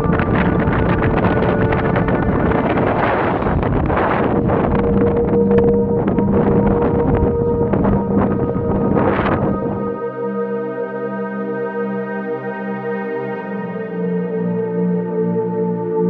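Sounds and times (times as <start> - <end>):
wind buffeting microphone: 0.0 - 10.2
held music drone: 0.0 - 16.0.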